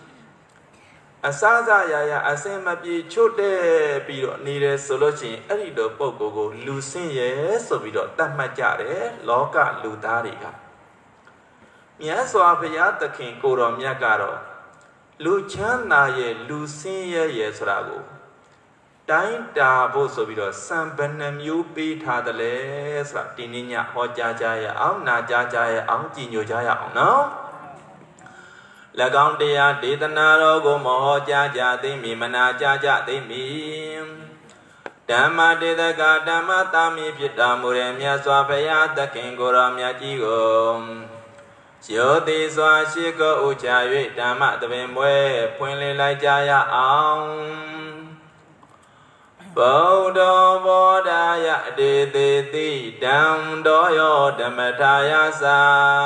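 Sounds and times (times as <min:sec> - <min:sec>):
man chanting melodically: 0:01.2 - 0:10.7, 0:12.0 - 0:18.3, 0:19.1 - 0:27.8, 0:28.9 - 0:48.4, 0:49.4 - 0:56.0.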